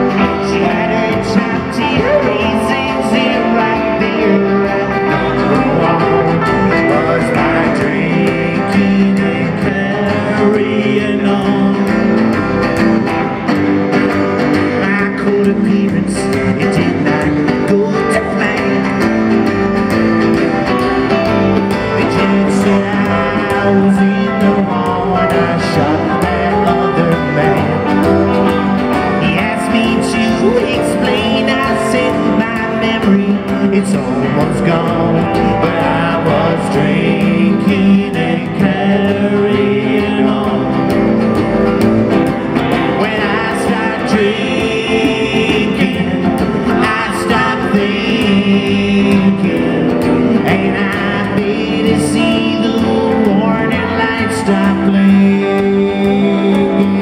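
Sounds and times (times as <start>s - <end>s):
electric guitar: 0.0s - 57.0s
strummed acoustic guitar: 0.0s - 57.0s
upright double bass: 0.0s - 57.0s.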